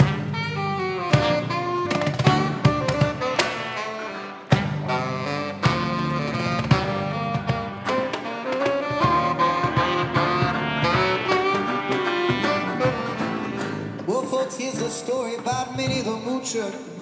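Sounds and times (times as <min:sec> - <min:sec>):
saxophone melody: 0:00.0 - 0:15.0
strummed guitars: 0:00.0 - 0:17.0.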